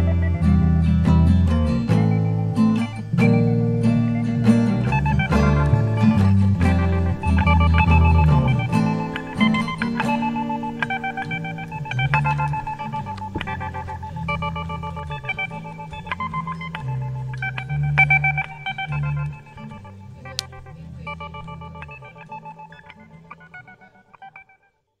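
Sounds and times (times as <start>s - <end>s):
bass line: 0.0s - 23.8s
plucked guitar notes: 0.0s - 24.8s.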